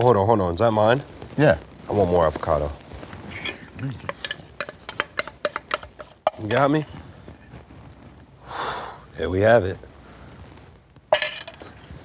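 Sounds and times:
sharp breath through the nose: 8.4s - 9.1s.

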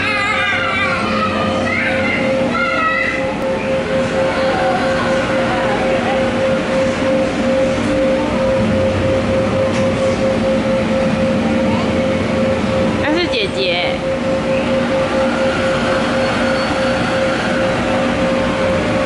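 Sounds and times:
child's voice: 0.0s - 3.3s
electric blower fan whine: 0.0s - 19.0s.

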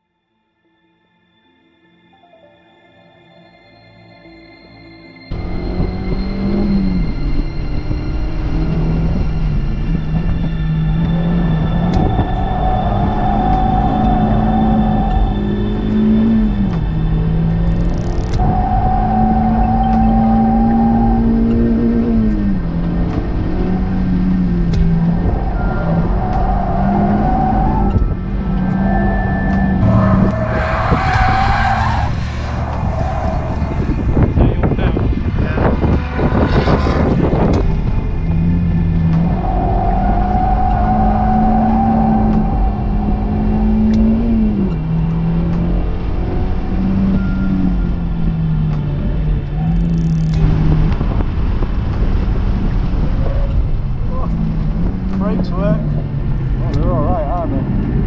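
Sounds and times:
car engine at high revs: 5.3s - 58.0s
tyres squealing: 25.4s - 34.4s.

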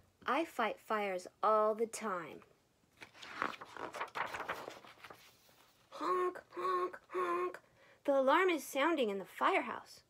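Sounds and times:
paper page turning: 3.0s - 5.9s.

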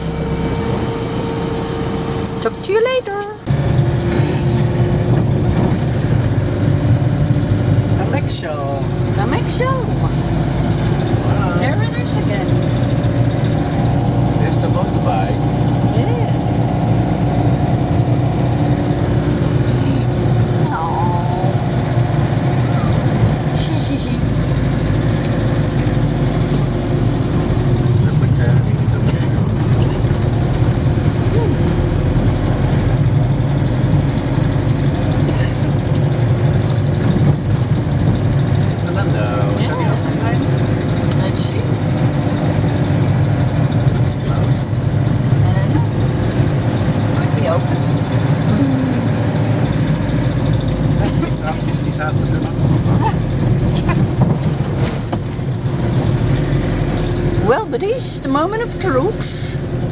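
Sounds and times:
road noise: 0.0s - 59.9s
van engine running at low speed: 0.0s - 59.9s.

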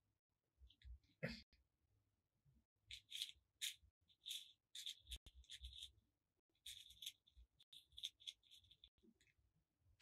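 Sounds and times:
plastic beads rattling in box: 2.9s - 5.9s, 6.6s - 9.0s.

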